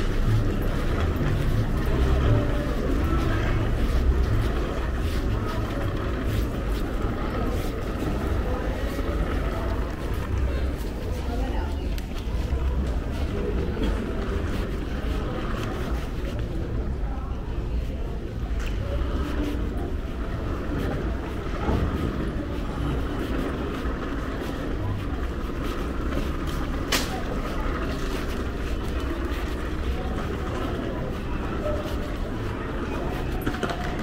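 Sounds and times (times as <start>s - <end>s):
murmur of distant voices: 0.0s - 34.0s.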